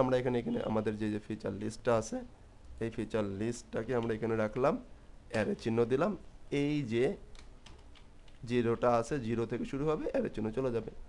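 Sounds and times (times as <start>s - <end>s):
person speaking: 0.0s - 11.0s
computer keyboard keystrokes: 7.3s - 8.4s.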